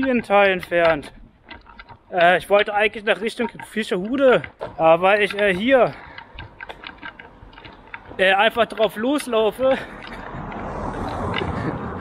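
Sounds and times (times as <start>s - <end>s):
car driving past: 9.8s - 12.0s.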